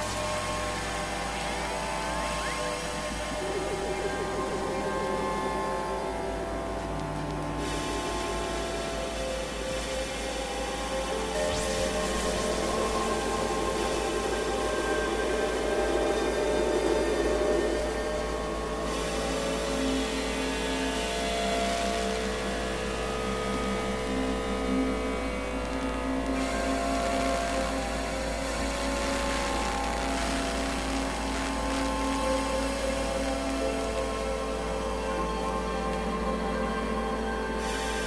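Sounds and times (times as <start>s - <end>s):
ambient synthesizer drones: 0.0s - 38.0s.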